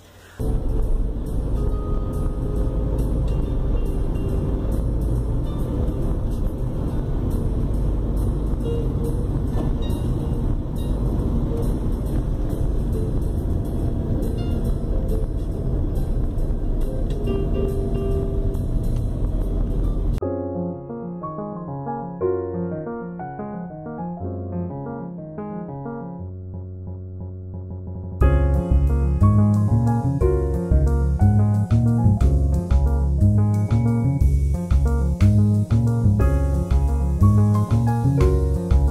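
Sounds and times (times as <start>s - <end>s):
car road and engine rumble: 0.0s - 20.2s, 28.2s - 38.9s
quiet background music: 0.4s - 25.2s, 28.2s - 38.9s.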